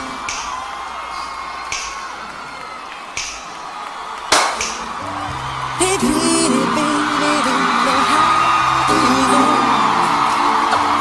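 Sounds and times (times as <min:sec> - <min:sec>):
crowd din: 0:03.1 - 0:11.0.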